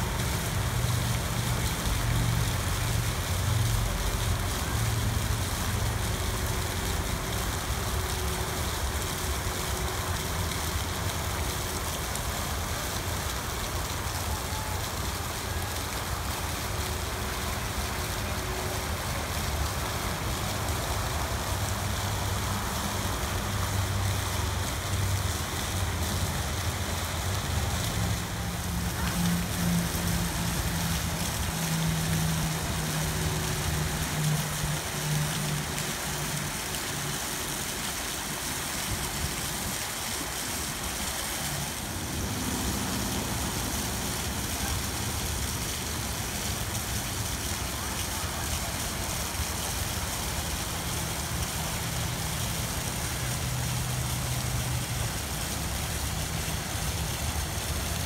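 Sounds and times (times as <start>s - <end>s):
waterfall splashing into pool: 0.0s - 58.0s.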